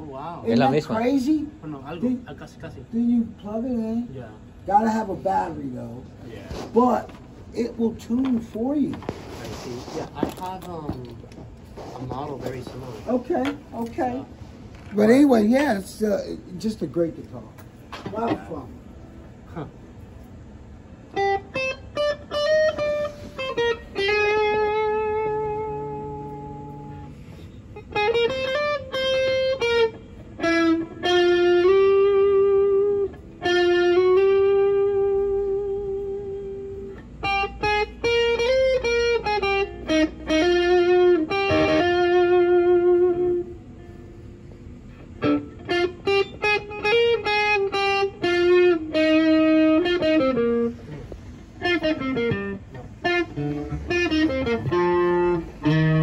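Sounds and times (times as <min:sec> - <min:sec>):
electric guitar melody: 0:17.5 - 0:56.0.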